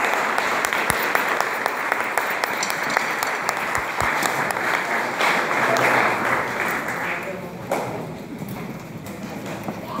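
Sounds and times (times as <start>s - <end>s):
audience murmuring: 0.0s - 10.0s.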